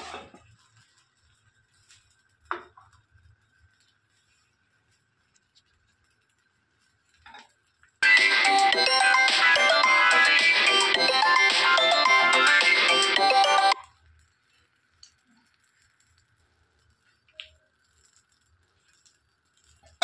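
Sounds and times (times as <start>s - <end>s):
electronic phone ringtone melody: 8.0s - 13.8s.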